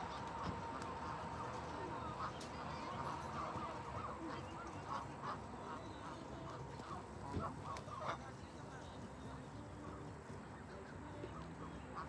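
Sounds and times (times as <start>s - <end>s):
geese honking: 0.0s - 12.0s.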